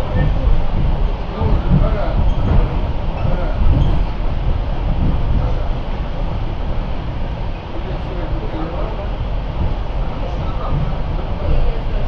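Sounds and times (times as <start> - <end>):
train carriage rumbling on track: 0.0 - 12.0.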